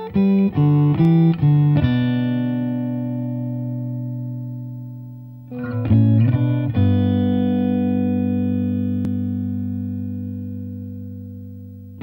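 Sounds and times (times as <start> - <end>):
low plucked guitar note ringing: 0.0 - 12.0.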